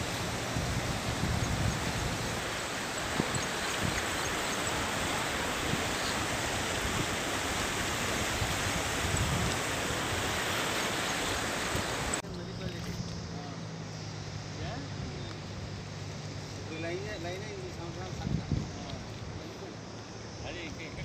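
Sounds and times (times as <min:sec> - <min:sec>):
wind rumble on microphone: 0:00.0 - 0:12.2, 0:17.8 - 0:19.5
floodwater rushing over road: 0:00.0 - 0:12.9.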